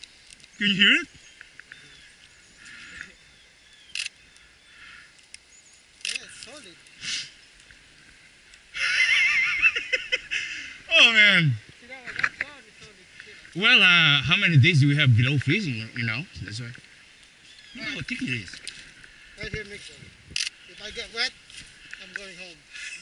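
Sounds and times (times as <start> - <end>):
pond ice chirps: 0.0 - 23.0.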